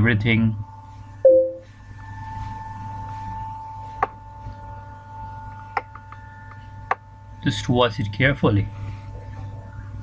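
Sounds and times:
electrical hum: 0:00.0 - 0:10.0
high-pitched whine: 0:00.0 - 0:10.0.

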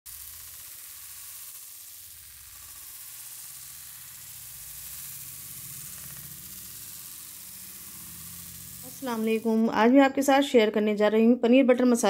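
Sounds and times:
paneer sizzling in oil: 0:00.0 - 0:09.9
low hum: 0:00.1 - 0:09.9.

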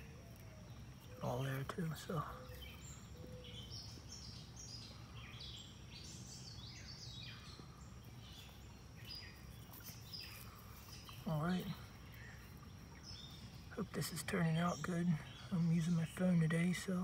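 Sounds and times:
songbirds chirping and trilling: 0:00.0 - 0:17.0.

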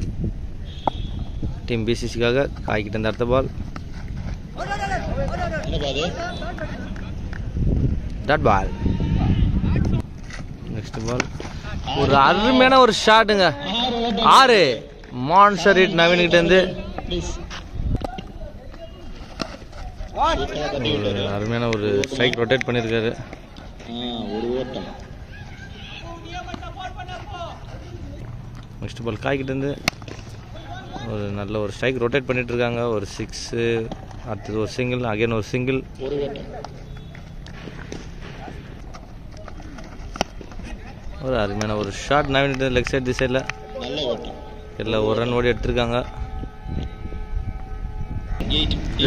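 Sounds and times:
distant players calling out: 0:04.5 - 0:07.2, 0:11.5 - 0:28.4, 0:29.3 - 0:31.5, 0:35.8 - 0:46.4
man talking: 0:40.8 - 0:46.2.

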